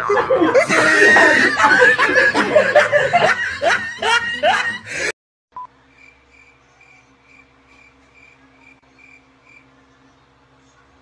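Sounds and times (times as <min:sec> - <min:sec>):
loud rapid laughter: 0:00.0 - 0:05.1.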